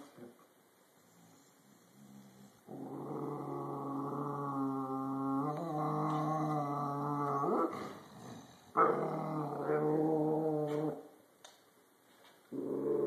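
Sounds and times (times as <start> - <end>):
dog growling low: 1.2 - 11.0, 12.5 - 13.0.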